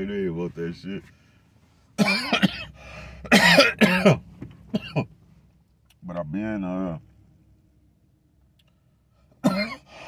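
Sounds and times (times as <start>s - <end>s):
man coughing: 2.0s - 5.1s, 9.4s - 10.0s.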